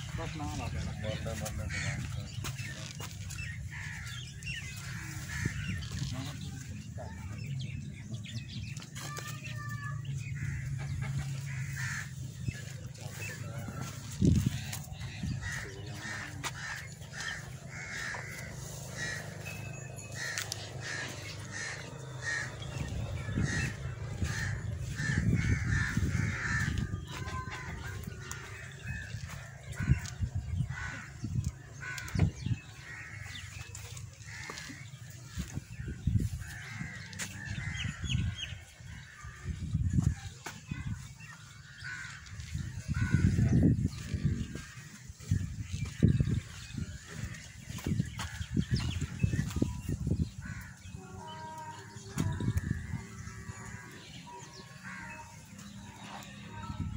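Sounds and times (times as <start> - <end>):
birds calling: 0.0 - 56.9
steady low rumble: 10.0 - 33.3.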